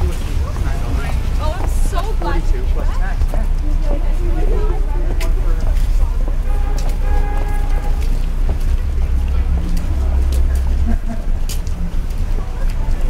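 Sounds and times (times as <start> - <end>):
passers-by voices: 0.0 - 13.0
traffic rumble: 0.0 - 13.0.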